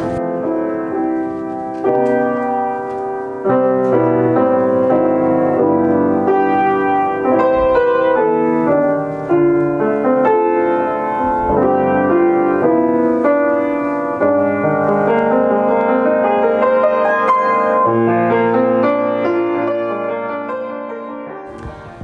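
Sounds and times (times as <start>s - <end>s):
grand piano playing: 0.0s - 22.0s.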